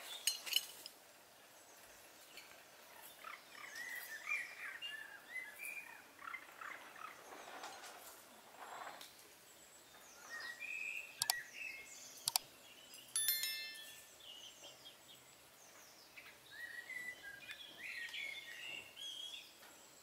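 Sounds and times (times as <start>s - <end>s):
small birds chirping: 1.3s - 20.0s
sharp clicks: 11.2s - 11.4s, 12.2s - 12.4s
bright ringing bell chime: 13.2s - 14.3s.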